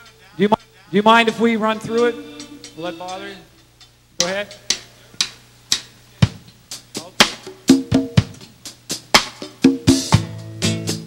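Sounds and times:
band playing punchy notes: 0.0 - 11.0
drum strokes: 1.2 - 11.0.

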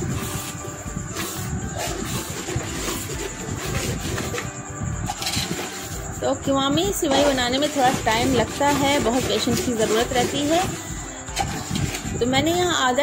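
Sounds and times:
spoon stirring in metal pot: 0.0 - 12.6.

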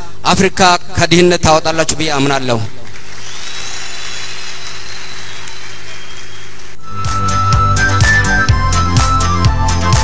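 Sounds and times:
audience applauding and cheering: 2.8 - 6.8.

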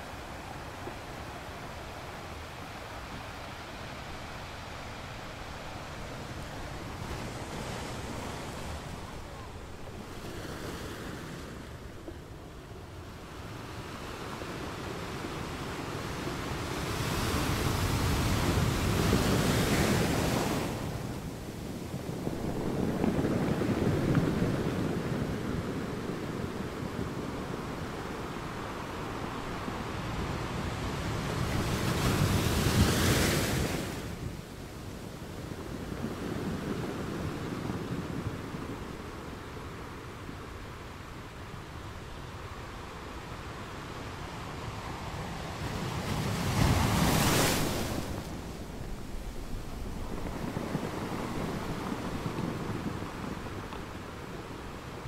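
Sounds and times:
surf breaking on rocks: 46.0 - 54.2.

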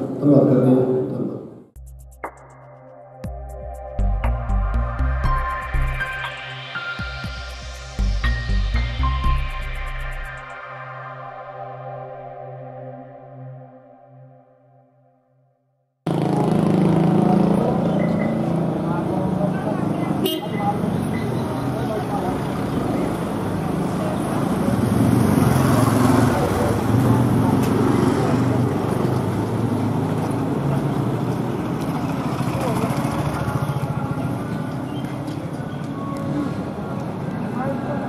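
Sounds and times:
soft synth music: 1.8 - 15.6
traffic: 4.0 - 13.4, 16.1 - 38.0.

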